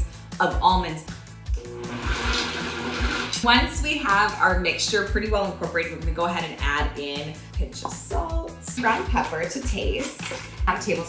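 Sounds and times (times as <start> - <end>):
background music with a beat: 0.0 - 3.3, 5.2 - 11.0
food processor motor whine: 1.6 - 3.4.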